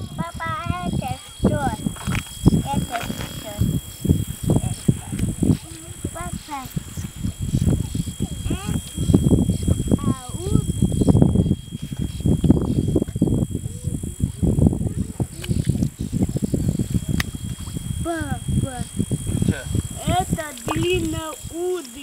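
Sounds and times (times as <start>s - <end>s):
man speaking: 19.4s - 19.8s.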